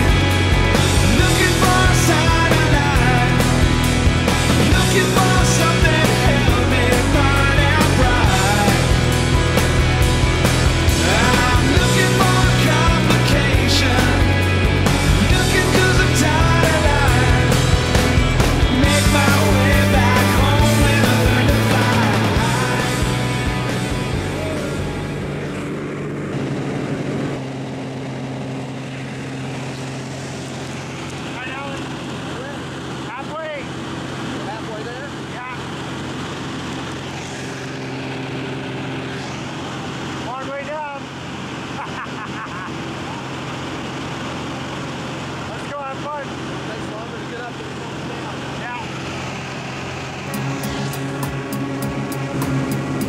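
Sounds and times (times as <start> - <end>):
propeller plane engine drone: 0.0 - 53.0
muffled voices: 24.2 - 25.8, 31.0 - 36.0, 45.4 - 49.2.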